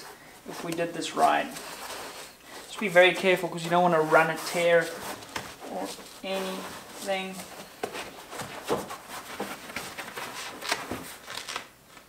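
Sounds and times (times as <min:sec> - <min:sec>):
foam rubbing and scraping: 0:00.0 - 0:11.4.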